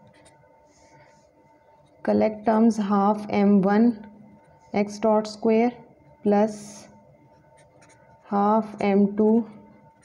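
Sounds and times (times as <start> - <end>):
marker writing on paper: 0.0 - 0.9, 7.6 - 8.1.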